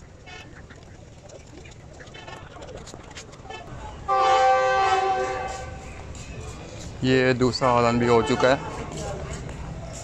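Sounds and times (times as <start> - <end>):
locomotive horn blast: 3.5 - 5.8, 8.1 - 8.8.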